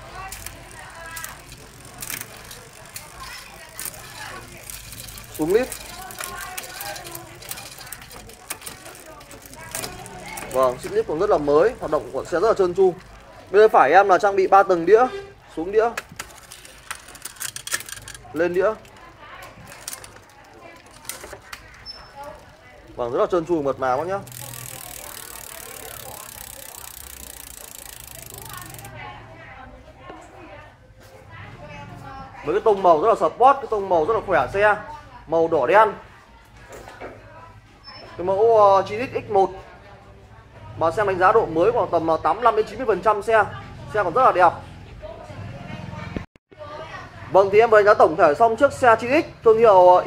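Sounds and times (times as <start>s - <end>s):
bicycle chain running through derailleur: 0.0s - 29.5s.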